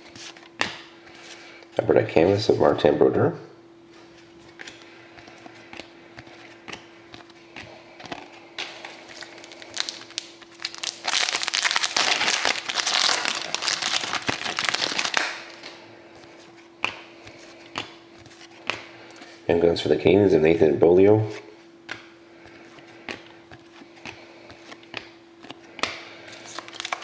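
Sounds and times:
wrapper crinkling as torn open: 9.0s - 15.7s, 26.4s - 27.0s.

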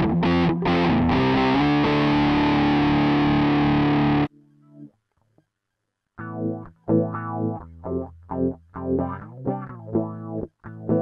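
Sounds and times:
distorted electric guitar chords: 0.0s - 4.8s, 6.2s - 11.0s.

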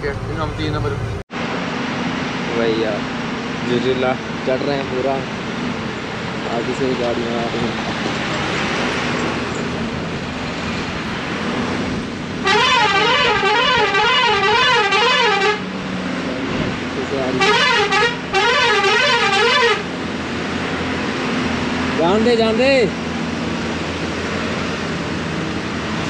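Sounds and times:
truck engine droning: 0.0s - 26.0s
truck warbling horn: 12.4s - 15.8s, 17.2s - 20.0s.

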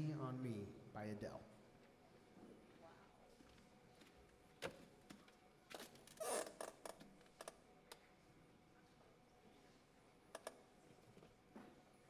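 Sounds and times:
faint clicks and knocks: 10.3s - 11.8s.

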